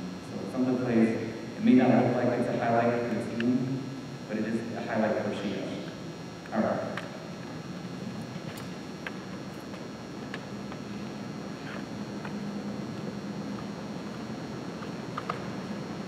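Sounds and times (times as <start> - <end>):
low hum and hiss: 0.0 - 16.0.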